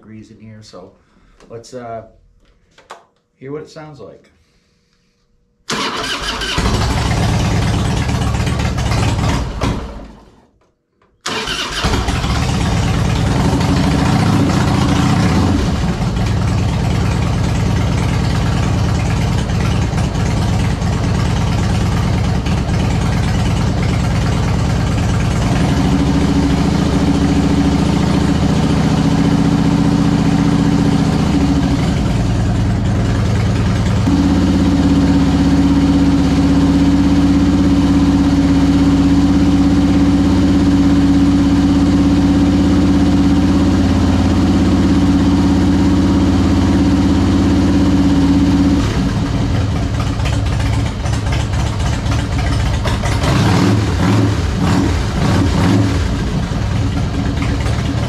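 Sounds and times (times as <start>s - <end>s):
motorcycle engine idling: 5.9s - 9.5s, 11.4s - 53.6s, 56.0s - 58.0s.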